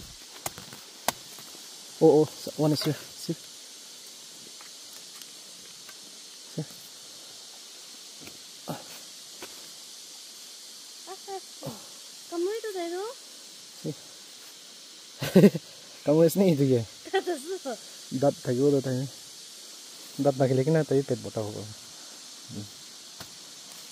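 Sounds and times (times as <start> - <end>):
insects hissing: 0.0 - 23.9
laughter: 15.2 - 15.7.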